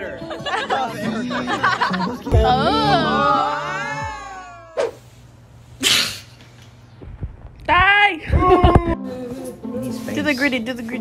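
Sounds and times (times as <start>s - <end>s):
person sneezing: 5.8s - 6.4s.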